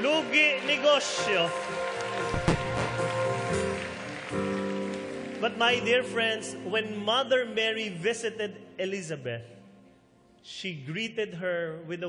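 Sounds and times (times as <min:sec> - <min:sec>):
soft music with held chords: 0:00.8 - 0:10.5.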